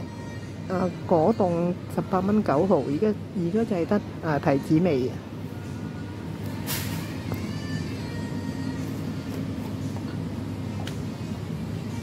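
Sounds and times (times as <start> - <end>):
faint in-store music: 0.0 - 12.0
supermarket background hum: 0.0 - 12.0.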